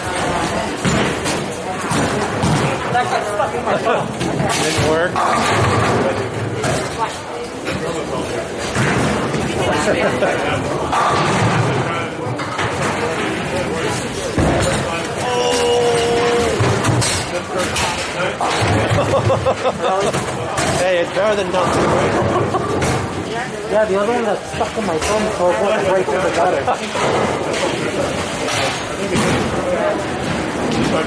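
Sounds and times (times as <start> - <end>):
chatter: 0.0 - 31.0.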